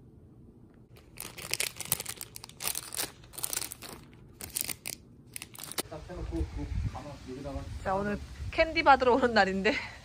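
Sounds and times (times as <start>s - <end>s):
cellophane bags crinkling: 0.9s - 5.8s.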